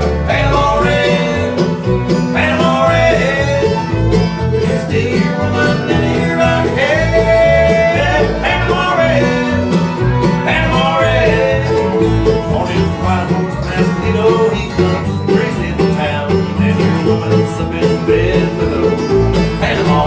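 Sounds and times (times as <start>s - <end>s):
bluegrass string band playing: 0.0s - 20.0s.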